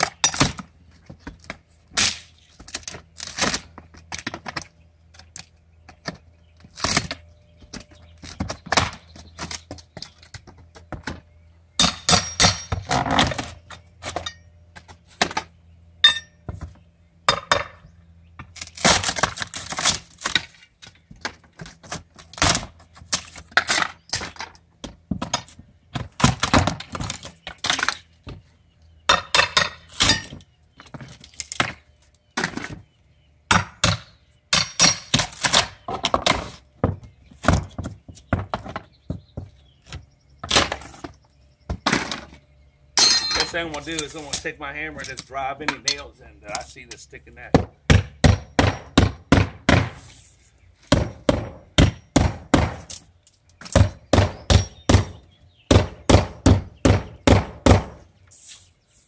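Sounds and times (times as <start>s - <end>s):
metal tools knocking and clinking: 11.8s - 12.9s, 16.0s - 16.4s, 43.0s - 44.4s
wood cracking and splintering: 18.5s - 20.7s.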